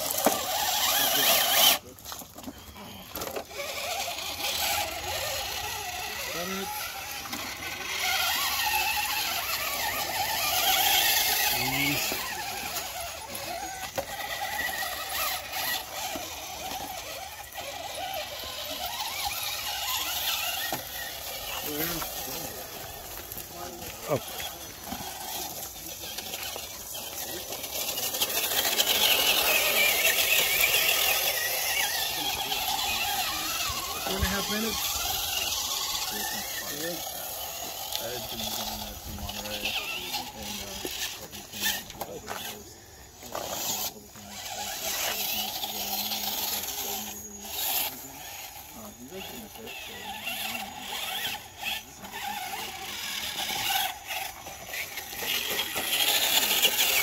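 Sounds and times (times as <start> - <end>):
electric motor and gears whining: 0.0 - 57.0
indistinct chatter: 0.0 - 57.0.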